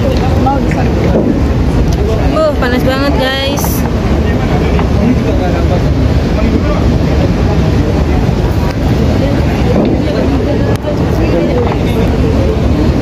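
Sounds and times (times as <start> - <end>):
people chattering: 0.0 - 13.0
wind rumbling on microphone: 0.0 - 13.0.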